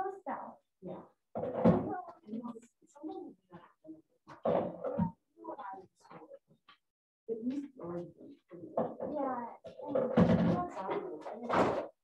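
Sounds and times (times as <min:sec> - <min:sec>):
indistinct voices talking: 0:07.3 - 0:11.8.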